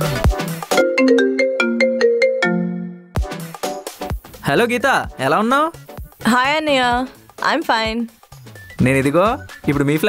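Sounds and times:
mobile phone ringtone melody: 0:00.7 - 0:03.1.

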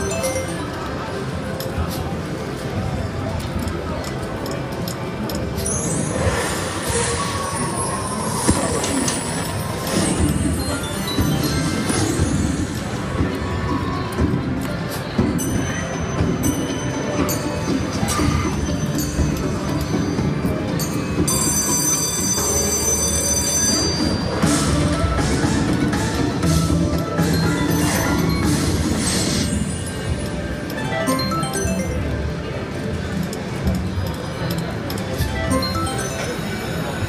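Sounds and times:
slot machine sounds: 0:00.0 - 0:37.0
high ringing chime: 0:21.3 - 0:24.4.

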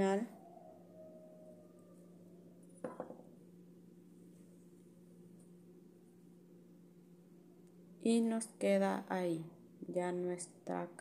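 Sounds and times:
faint steady hum: 0:00.0 - 0:11.0
hands knocking near microphone: 0:02.8 - 0:03.2.

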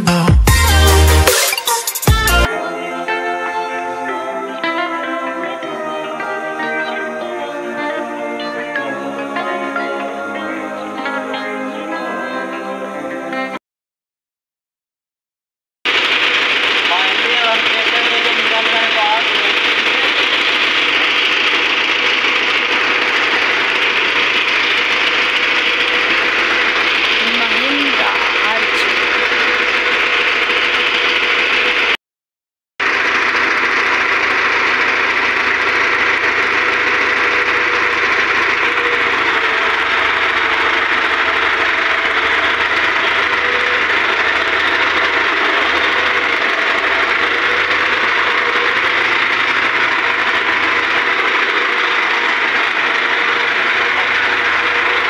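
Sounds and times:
tractor diesel engine idling: 0:15.9 - 0:32.0, 0:32.8 - 0:55.0.

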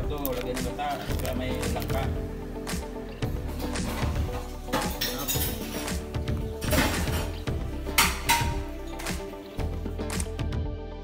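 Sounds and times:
background music: 0:00.0 - 0:11.0
dishes and cutlery clinking: 0:03.5 - 0:09.2.

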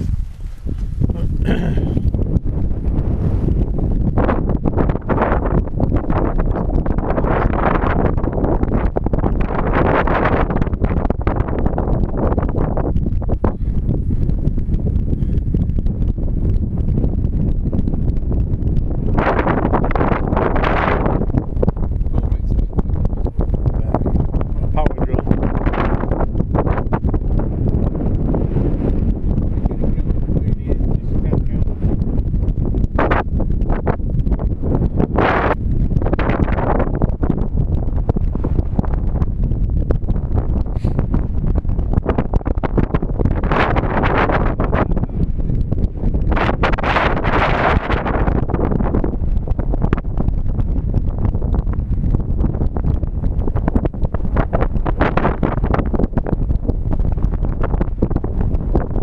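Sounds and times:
gusty wind on microphone: 0:00.0 - 0:59.0.

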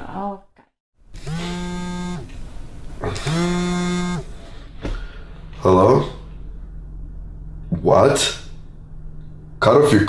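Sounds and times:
mobile phone vibrating: 0:01.2 - 0:02.3, 0:03.0 - 0:04.4.

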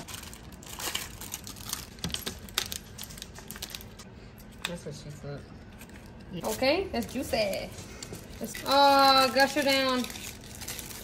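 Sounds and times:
plastic wrappers crinkling: 0:00.0 - 0:04.7, 0:05.6 - 0:11.0.

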